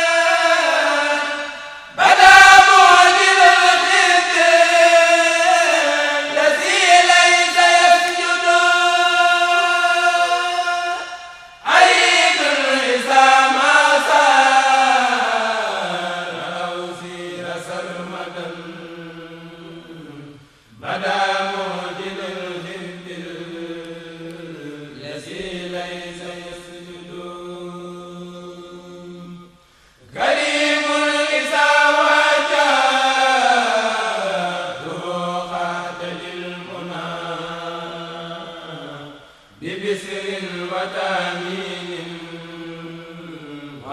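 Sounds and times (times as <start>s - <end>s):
men chanting a cappella: 0.0s - 43.9s.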